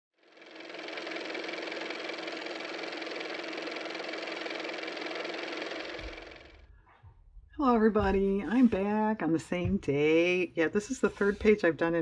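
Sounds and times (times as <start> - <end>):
old car engine running: 0.2 - 6.8.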